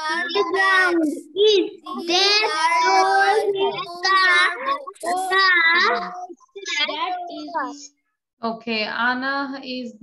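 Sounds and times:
children chanting sentences: 0:00.0 - 0:07.9.

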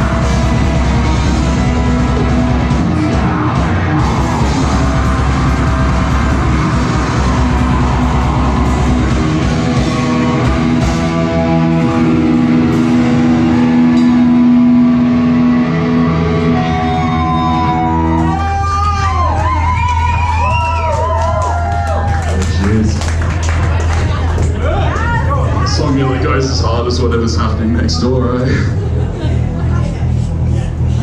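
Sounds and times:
drum kit: 0:00.0 - 0:26.0
distorted electric guitars: 0:00.0 - 0:31.0.

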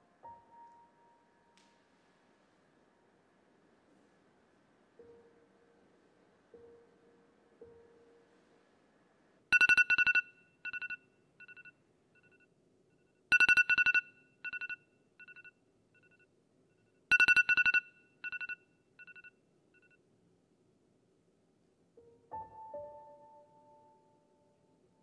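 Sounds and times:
smartphone alarm beeping: 0:09.5 - 0:12.5, 0:13.3 - 0:16.3, 0:17.1 - 0:20.0.

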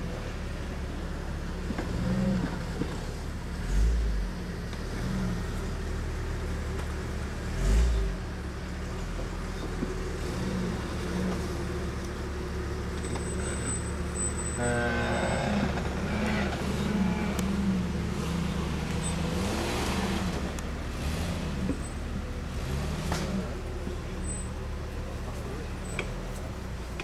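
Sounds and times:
car engine at low revs: 0:00.0 - 0:27.0.

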